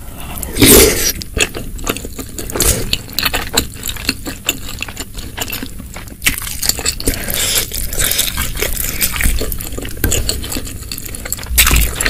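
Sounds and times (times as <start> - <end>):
chewing crunchy food: 0.2 - 12.0.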